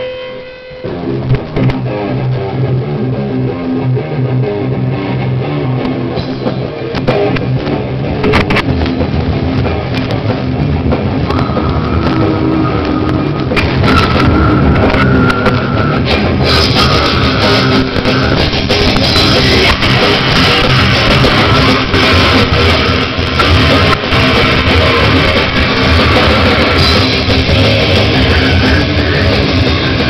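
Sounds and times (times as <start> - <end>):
bass guitar: 0.0 - 30.0
distorted electric guitar: 0.0 - 30.0
drum kit: 0.8 - 30.0
screamed vocals: 11.3 - 18.4.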